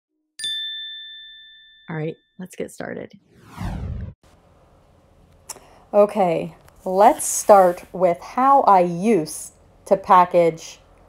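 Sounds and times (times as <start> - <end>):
bell-like ding: 0.4 - 2.4.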